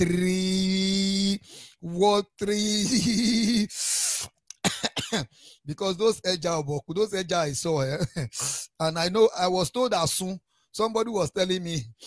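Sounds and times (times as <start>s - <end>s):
man coughing: 4.6s - 5.4s.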